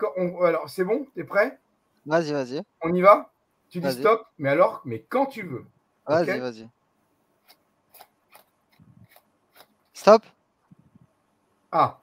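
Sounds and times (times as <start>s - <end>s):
playing cards snapping: 7.5s - 9.8s.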